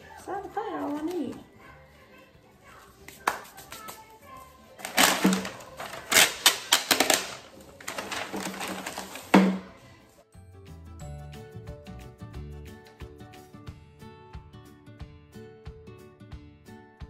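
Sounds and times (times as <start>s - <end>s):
ribbon rustling and crackling: 0.0s - 1.8s, 2.6s - 9.4s
background music: 0.0s - 17.0s.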